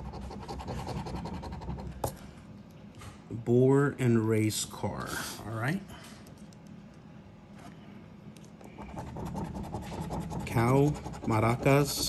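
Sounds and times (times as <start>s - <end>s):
coin scratching lottery ticket: 0.0s - 2.0s, 8.8s - 12.0s.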